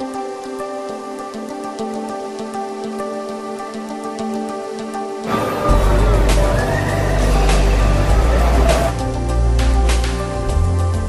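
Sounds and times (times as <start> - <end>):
deep rumble of amusement ride: 5.3 - 9.0
riders screaming: 5.3 - 9.0.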